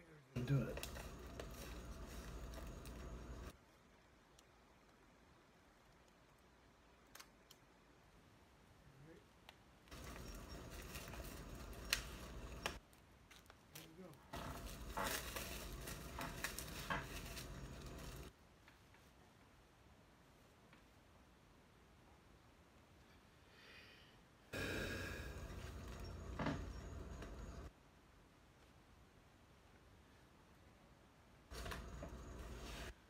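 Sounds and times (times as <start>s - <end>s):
package rustling: 0.4s - 3.5s, 9.9s - 18.3s.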